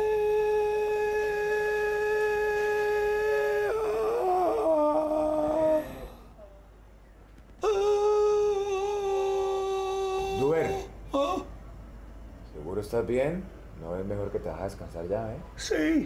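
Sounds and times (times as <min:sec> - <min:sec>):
man chanting long sustained notes: 0:00.0 - 0:06.3, 0:07.6 - 0:11.0.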